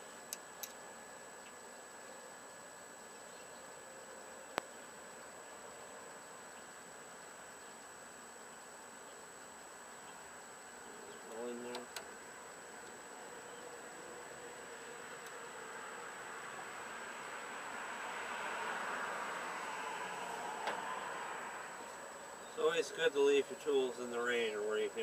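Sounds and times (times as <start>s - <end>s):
faint buzzing drone: 0.0s - 25.0s
steady low hiss: 0.0s - 25.0s.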